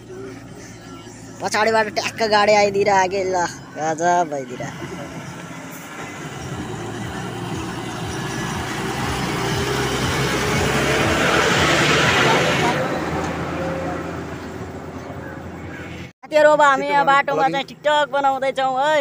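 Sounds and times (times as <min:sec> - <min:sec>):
heavy truck driving past: 0:04.4 - 0:16.1.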